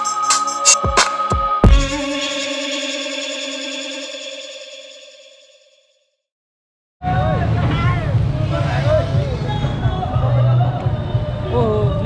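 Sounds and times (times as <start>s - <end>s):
low street rumble: 7.0s - 12.0s
people's voices: 7.0s - 12.0s.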